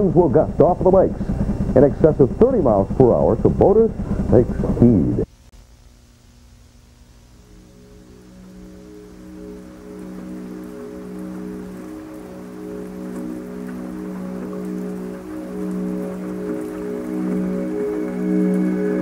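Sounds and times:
ambient synth pad chords: 0.0 - 5.5, 7.2 - 19.0
light patter of rain: 5.5 - 19.0.

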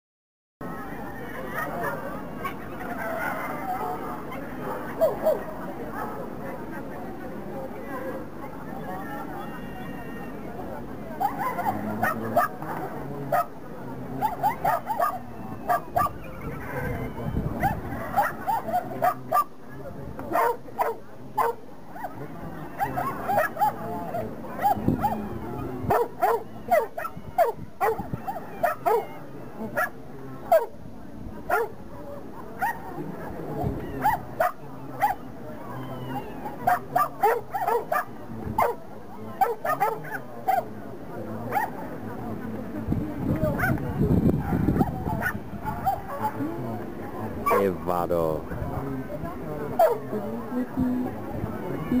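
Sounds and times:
small dog barking: 11.2 - 12.6, 14.2 - 16.2, 17.6 - 19.5, 20.3 - 22.1, 25.9 - 29.1, 31.5 - 31.7, 36.7 - 38.8, 39.4 - 40.6.

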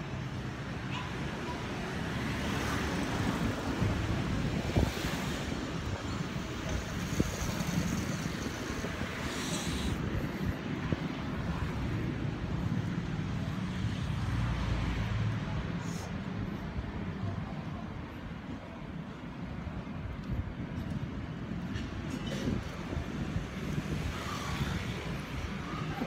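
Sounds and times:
street traffic: 0.0 - 26.0
wind buffeting microphone: 3.2 - 13.6, 15.5 - 26.0.

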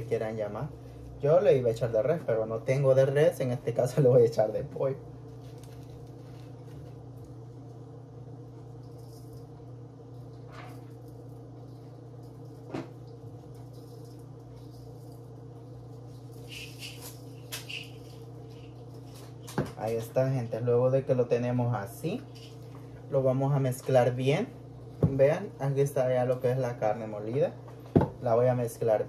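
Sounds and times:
low electrical hum: 0.0 - 29.0.

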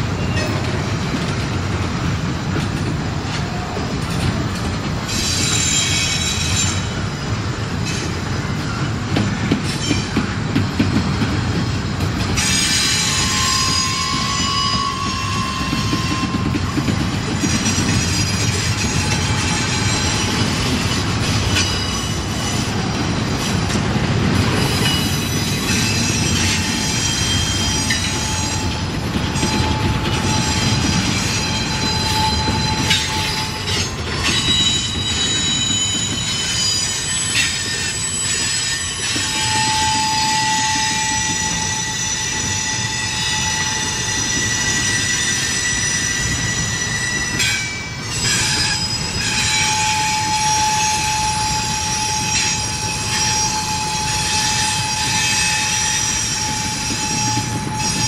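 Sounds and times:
rumble of train wheels on rail: 0.0 - 58.0
high wheel squeals: 5.1 - 9.0, 12.4 - 23.5, 24.5 - 58.0.

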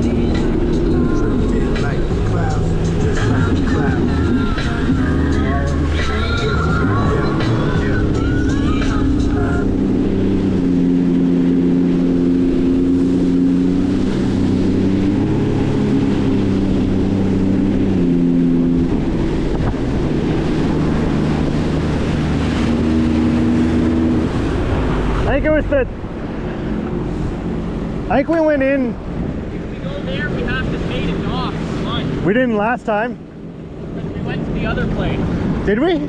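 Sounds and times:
water and wind rushing: 0.0 - 36.0
watercraft engine droning: 0.0 - 36.0.

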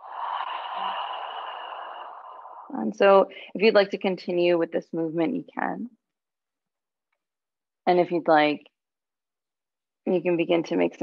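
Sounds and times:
woman breathy exhale: 0.0 - 3.6.

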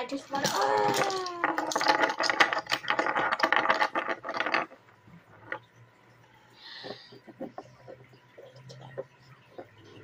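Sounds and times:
plastic pieces clicking on table: 0.3 - 4.8.

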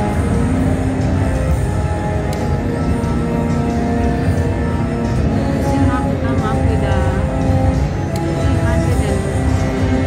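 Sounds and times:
slot machine music: 0.0 - 10.0.

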